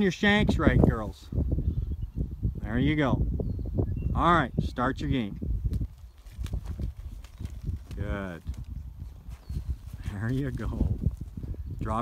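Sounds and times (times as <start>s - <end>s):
hooves on loose dirt: 5.5s - 12.0s.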